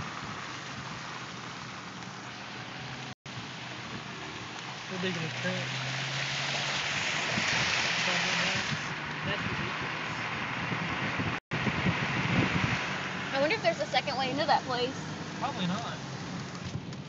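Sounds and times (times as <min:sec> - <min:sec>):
running floodwater: 0:00.0 - 0:10.2
rain hissing: 0:00.0 - 0:16.7
low engine hum: 0:00.0 - 0:17.0.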